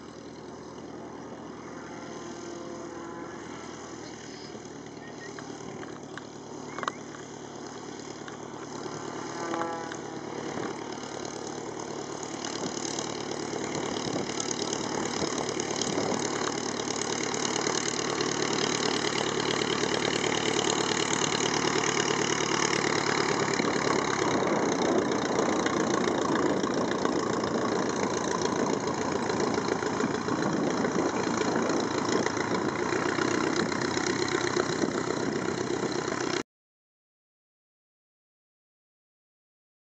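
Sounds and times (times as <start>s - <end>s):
biplane piston engine and propeller: 0.0s - 36.4s.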